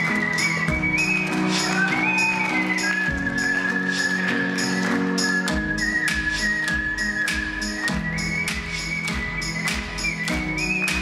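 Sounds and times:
person whistling melody: 0.0 - 11.0
pop backing track: 0.0 - 11.0.

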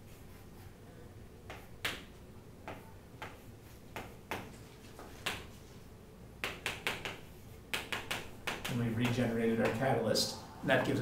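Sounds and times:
chalk tapping on chalkboard: 1.5 - 5.6, 6.4 - 9.8.

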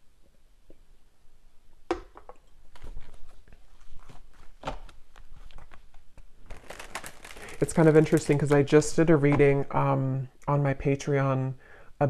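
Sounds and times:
crackling and rustling handling: 2.5 - 9.8.

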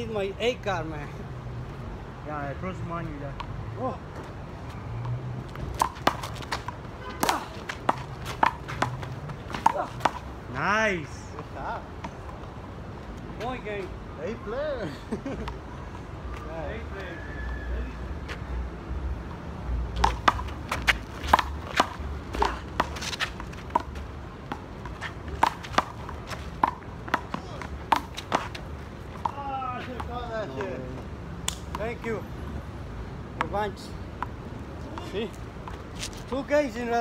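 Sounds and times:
ball bouncing on asphalt: 3.2 - 13.8, 19.2 - 32.2, 33.3 - 36.2
men calling out: 29.2 - 31.0.

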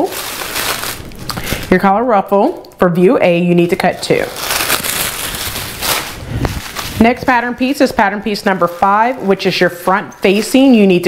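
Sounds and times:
paper rustling and crinkling: 0.0 - 1.7, 4.1 - 10.9.

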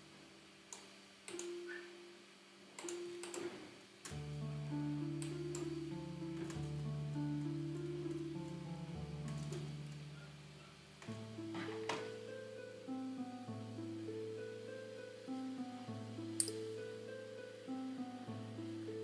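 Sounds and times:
harp melody: 4.2 - 19.0.

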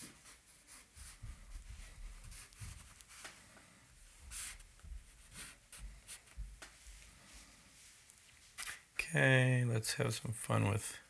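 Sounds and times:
charcoal scratching on paper: 0.0 - 3.3, 4.3 - 6.4
hand bumping on paper: 1.0 - 3.4, 4.3 - 6.8.

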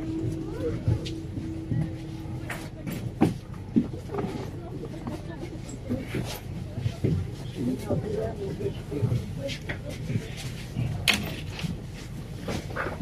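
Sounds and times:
steady hum: 0.0 - 9.3
bus engine rumble: 0.0 - 13.0
indistinct passengers talking: 0.0 - 13.0.

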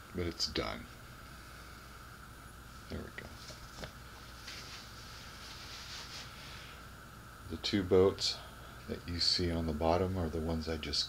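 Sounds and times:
room tone hum and hiss: 0.0 - 11.0
man speaking: 0.1 - 0.9, 2.9 - 3.4, 7.5 - 11.0.

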